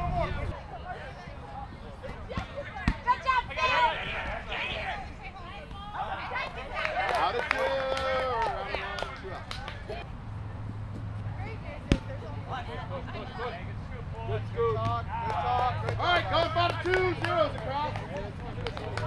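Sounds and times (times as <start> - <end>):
players shouting: 2.1 - 9.2, 14.2 - 18.9.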